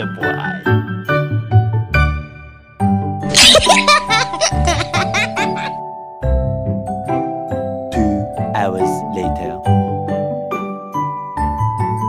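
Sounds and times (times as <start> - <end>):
light background music: 0.0 - 12.0
cartoon voice giggling: 3.3 - 5.7.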